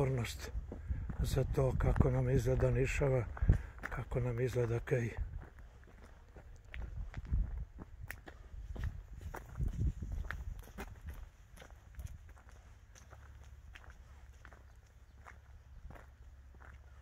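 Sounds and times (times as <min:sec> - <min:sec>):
footsteps on road: 0:00.0 - 0:17.0.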